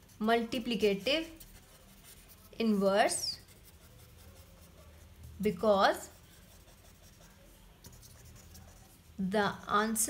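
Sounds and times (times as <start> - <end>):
marker scratching on paper: 0.0 - 10.0.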